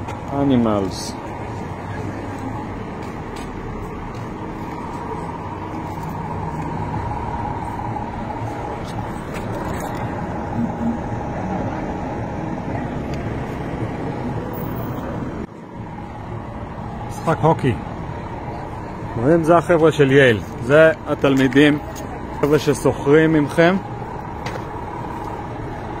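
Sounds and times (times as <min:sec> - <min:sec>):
motor vehicle road noise: 0:00.0 - 0:26.0.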